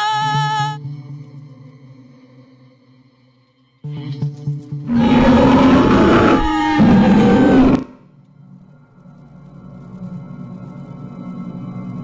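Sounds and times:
woman screaming: 0.0s - 0.8s, 4.9s - 7.9s.

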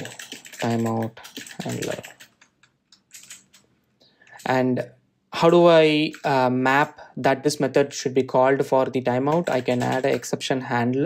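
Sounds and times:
keyboard typing: 0.0s - 4.7s, 5.4s - 6.6s, 9.1s - 10.4s.

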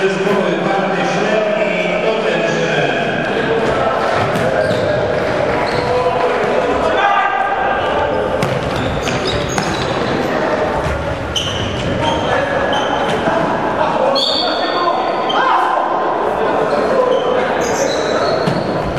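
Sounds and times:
players shouting: 3.4s - 10.8s
shoe squeaks: 4.5s - 6.1s, 8.0s - 10.3s, 11.3s - 13.3s, 14.1s - 15.5s, 17.0s - 18.9s.

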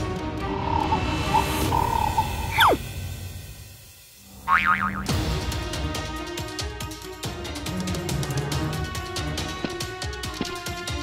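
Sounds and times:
background music: 0.0s - 11.0s
cartoon boing sound effect: 4.5s - 5.2s.

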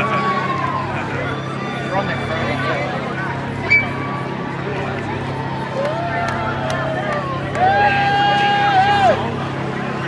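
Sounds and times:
crowd chatter: 0.0s - 10.0s
steady low hum: 0.0s - 10.0s.

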